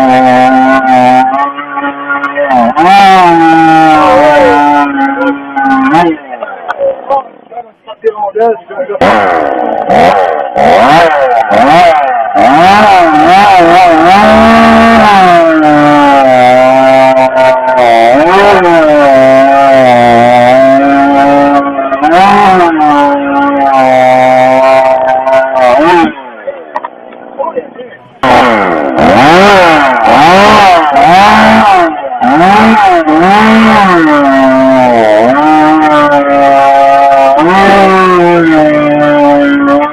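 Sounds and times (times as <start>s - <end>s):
chainsaw cutting timber: 0.0s - 6.2s, 9.0s - 26.2s, 28.2s - 39.9s.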